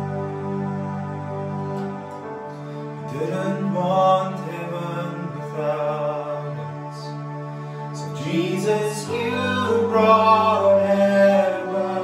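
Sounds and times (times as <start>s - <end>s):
sustained keyboard chords: 0.0s - 12.0s
man singing: 3.1s - 7.3s, 8.0s - 12.0s.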